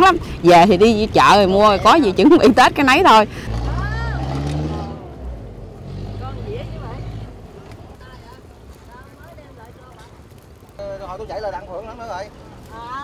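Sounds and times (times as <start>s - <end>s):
faint voices chattering: 5.0s - 13.0s.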